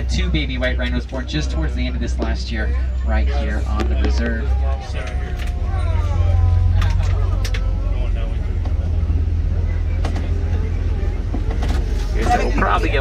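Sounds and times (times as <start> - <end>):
faint voices: 0.0 - 13.0
truck engine rumble: 0.0 - 13.0
vehicle knocks and rattles: 11.2 - 12.0.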